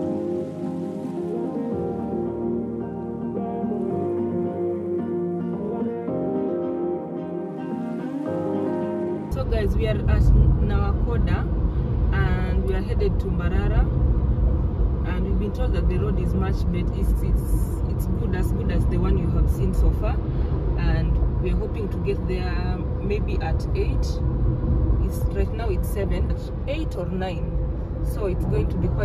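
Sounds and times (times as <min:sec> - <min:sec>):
acoustic guitar music: 0:00.0 - 0:10.4
car engine rumble: 0:09.3 - 0:29.0.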